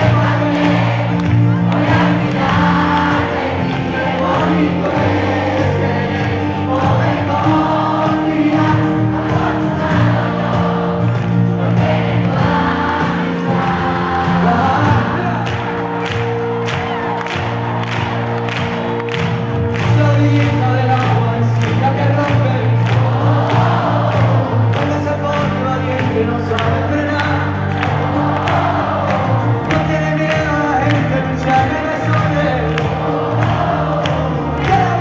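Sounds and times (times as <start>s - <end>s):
crowd singing along: 0.0s - 35.0s
live pop band: 0.0s - 35.0s.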